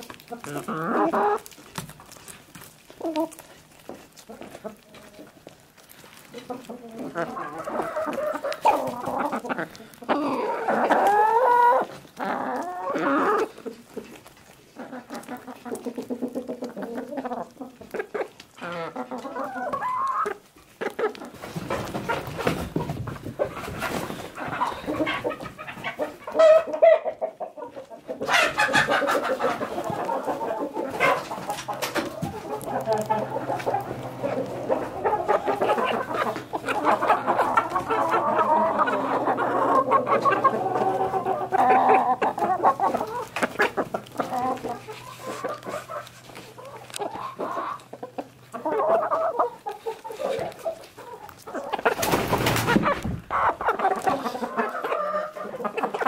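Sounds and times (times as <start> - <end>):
beaks pecking on crisp food: 0.0 - 56.0
hens clucking: 0.0 - 56.0.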